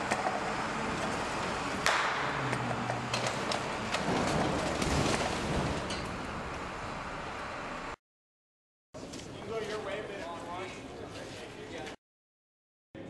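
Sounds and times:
sharp bang: 1.8 - 2.5.

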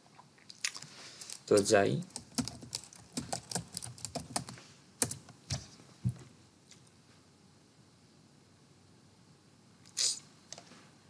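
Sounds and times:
computer keyboard typing: 1.2 - 5.6.

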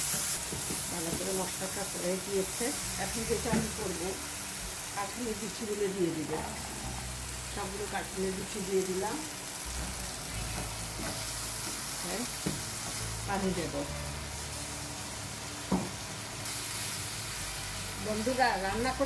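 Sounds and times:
paste sizzling in a frying pan: 0.0 - 19.0.

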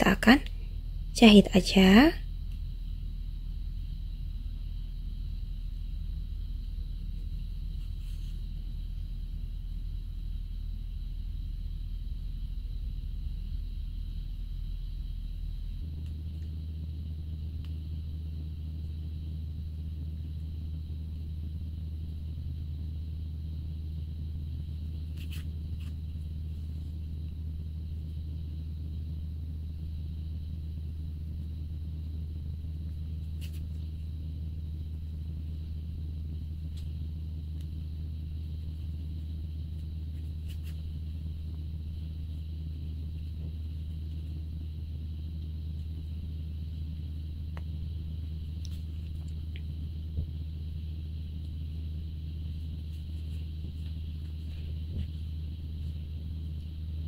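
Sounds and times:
faint high-pitched whine: 0.0 - 57.0
low hum: 0.0 - 57.0.

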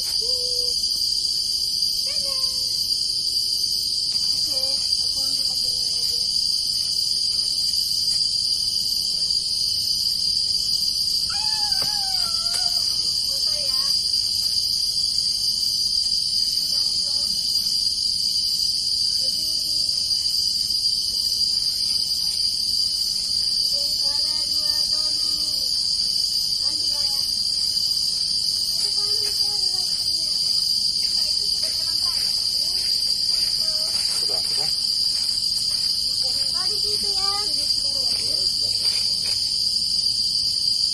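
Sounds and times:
insects droning: 0.0 - 40.9.

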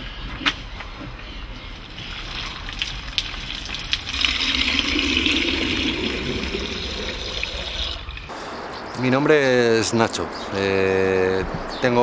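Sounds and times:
water running into plastic container: 2.3 - 8.3.

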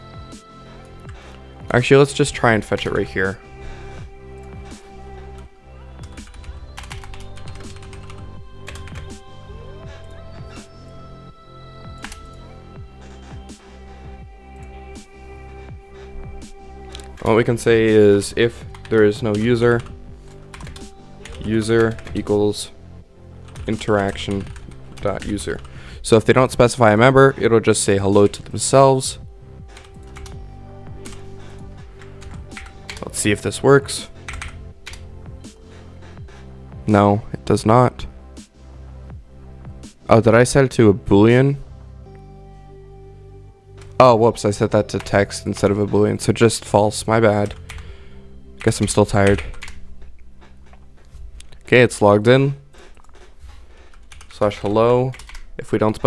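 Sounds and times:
background music: 0.0 - 56.0
computer keyboard typing: 6.0 - 9.2, 18.7 - 22.4, 23.4 - 25.7, 29.8 - 30.4, 31.0 - 33.2, 34.2 - 35.1, 47.4 - 47.8, 48.6 - 49.8, 52.8 - 55.5.

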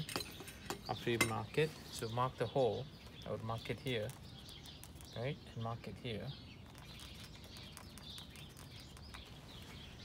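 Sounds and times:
distant birds chirping: 0.0 - 10.0.

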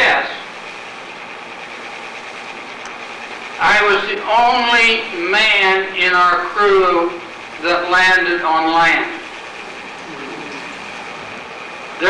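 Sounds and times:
room and recording hiss: 2.7 - 12.0.

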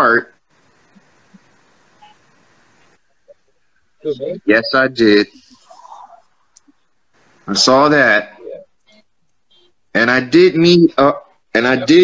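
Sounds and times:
faint call line hiss: 0.0 - 12.0
faint blips: 0.4 - 7.5, 8.3 - 10.0.

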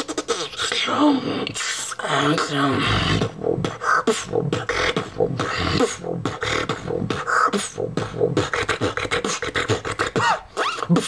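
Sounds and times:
person beatboxing: 0.0 - 11.0.

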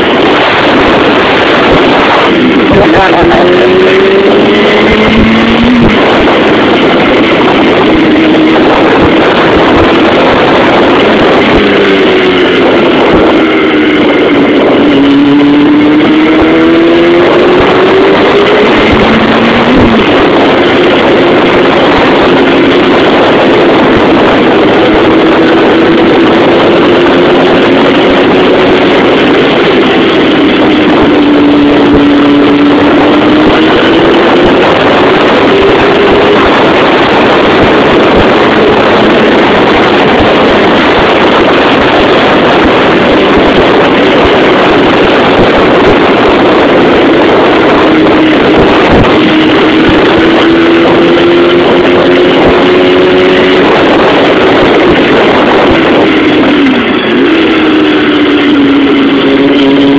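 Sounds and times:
motorcycle engine: 0.0 - 59.9
wind noise: 0.0 - 59.9.

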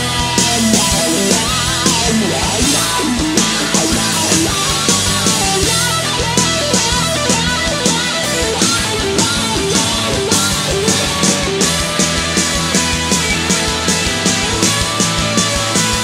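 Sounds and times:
drum kit beat: 0.0 - 16.0
electric guitar bending lines: 0.0 - 16.0
rock band playing: 0.0 - 16.0.

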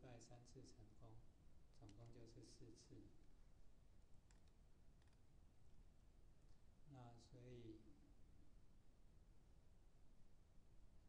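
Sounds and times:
faint computer mouse click: 1.7 - 2.2, 4.0 - 5.2.

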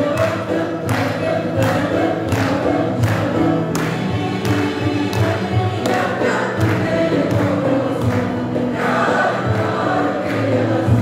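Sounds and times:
folk ensemble playing: 0.0 - 11.0
mixed choir singing: 0.0 - 11.0.

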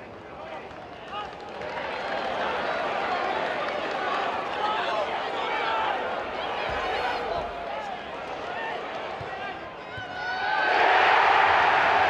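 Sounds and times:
football crowd shouting: 0.3 - 12.0.

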